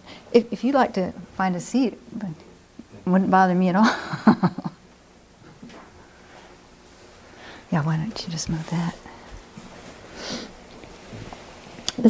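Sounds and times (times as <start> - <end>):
person sniffing: 10.1 - 10.6.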